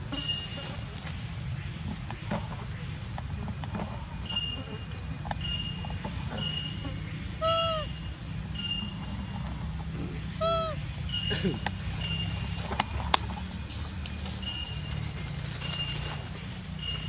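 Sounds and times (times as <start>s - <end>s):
high insect drone: 0.0s - 17.0s
baby monkey cooing: 7.4s - 7.9s, 10.2s - 10.8s
short high peeps: 10.4s - 10.8s.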